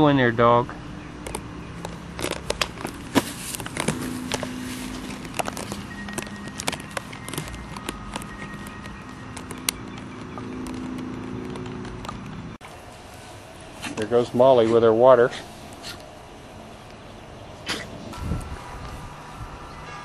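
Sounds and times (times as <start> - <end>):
dish dragged over grass: 2.9 - 6.5.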